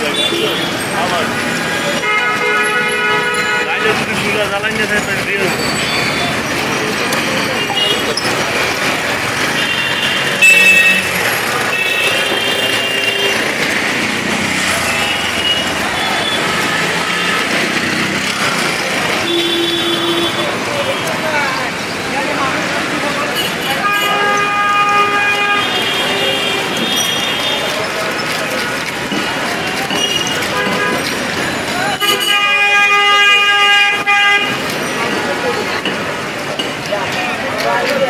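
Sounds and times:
people talking: 0.0 - 13.6, 14.2 - 38.0
traffic: 0.0 - 38.0
vehicle horns tooting: 1.7 - 4.4, 7.5 - 13.9, 14.6 - 21.4, 23.2 - 28.8, 29.6 - 34.9.

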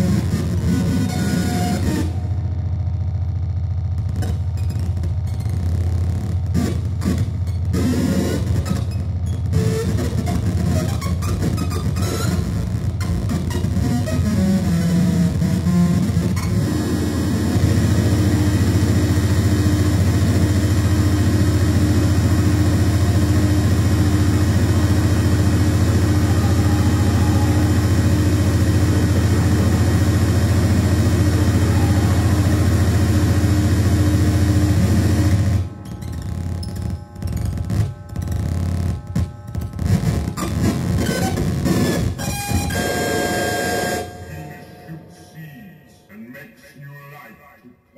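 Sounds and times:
droning chord: 0.0 - 8.7, 12.1 - 46.0
live band playing distorted music: 0.0 - 45.2
steady higher tone: 16.4 - 39.5, 42.4 - 46.2.

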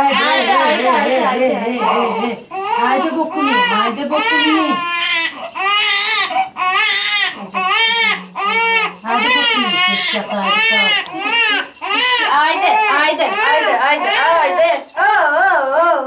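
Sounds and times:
newborn baby crying: 0.0 - 14.9.

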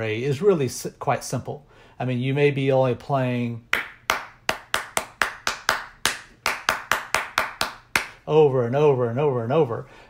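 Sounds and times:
hand claps in steady rhythm: 3.7 - 8.2.

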